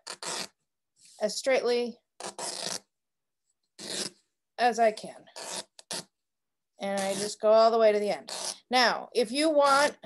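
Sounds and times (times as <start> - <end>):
fabric ripping: 0.0 - 0.6, 2.2 - 2.9, 3.8 - 4.2.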